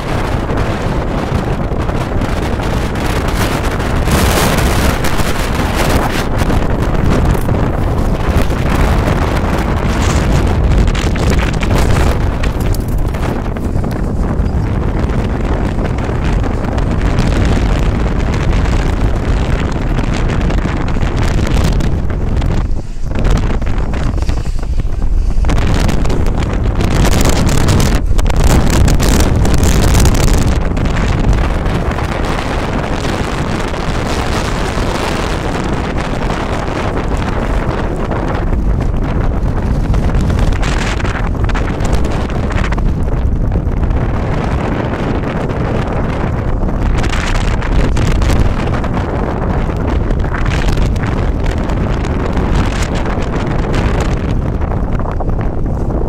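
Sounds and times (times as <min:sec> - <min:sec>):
gusty wind buffeting microphone: 0:00.0 - 0:56.0.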